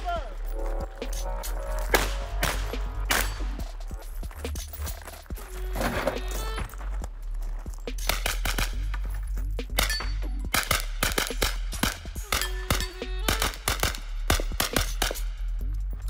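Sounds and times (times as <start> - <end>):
background music with bass line: 0.0 - 16.0
rapid gunfire: 8.0 - 8.8, 9.8 - 15.4.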